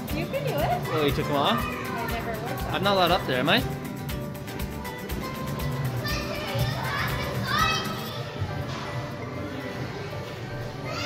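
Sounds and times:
background music: 0.0s - 11.0s
children playing and shouting: 0.1s - 11.0s.

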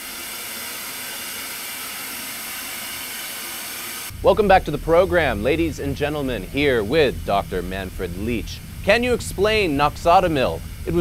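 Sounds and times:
tv static hiss: 2.5s - 11.0s.

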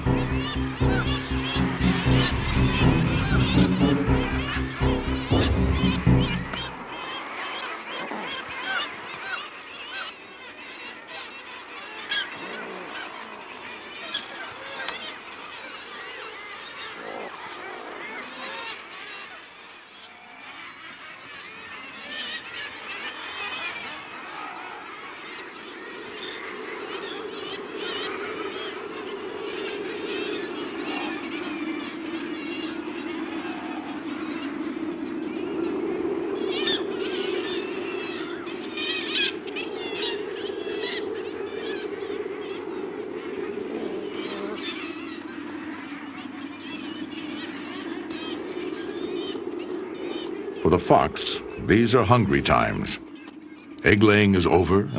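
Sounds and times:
low seabird colony din: 0.0s - 54.9s.

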